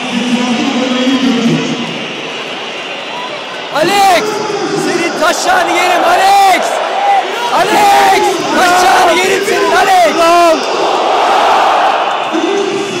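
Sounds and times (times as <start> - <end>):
stadium crowd noise: 0.0 - 13.0
men shouting long yells: 3.8 - 12.1.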